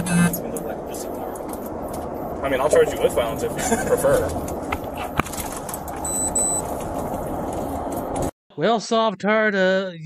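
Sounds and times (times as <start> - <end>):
vehicle cabin noise: 0.0 - 8.3
short electronic beeps: 6.0 - 6.7.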